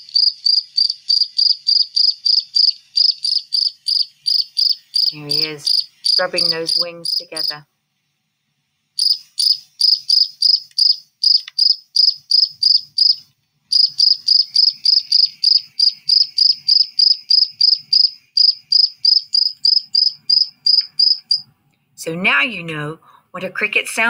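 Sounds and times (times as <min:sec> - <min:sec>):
cricket chirping: 0:00.0 - 0:07.6, 0:09.0 - 0:21.5.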